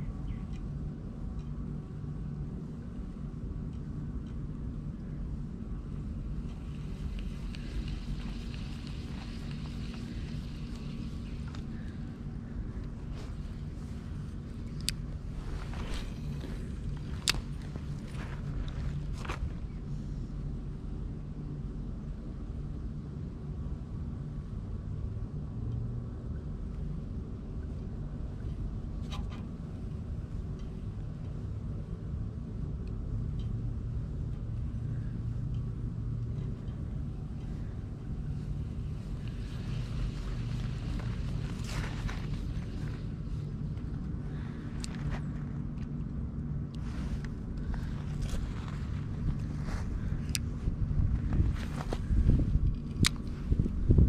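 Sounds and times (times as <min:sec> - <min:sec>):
low outdoor rumble: 0:00.0 - 0:54.0.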